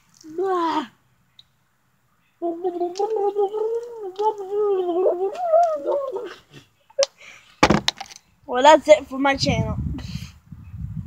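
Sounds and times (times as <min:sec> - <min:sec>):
wavering voice-like call: 0:02.4 - 0:06.6.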